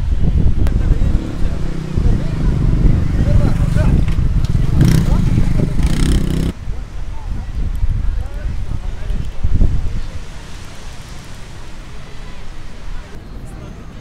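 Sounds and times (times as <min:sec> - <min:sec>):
wind rumble on microphone: 0:00.0 - 0:13.2
indistinct voices: 0:00.6 - 0:06.5.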